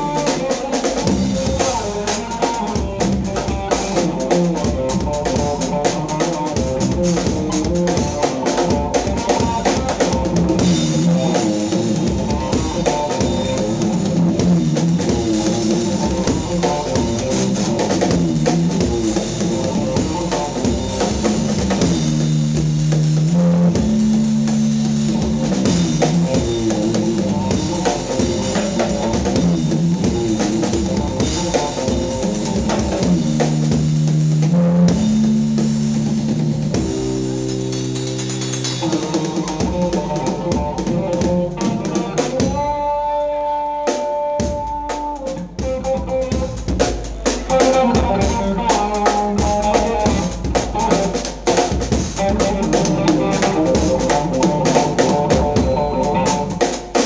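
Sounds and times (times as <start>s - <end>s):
drum kit with cymbals: 0.0s - 57.0s
electric guitar lines: 0.0s - 57.0s.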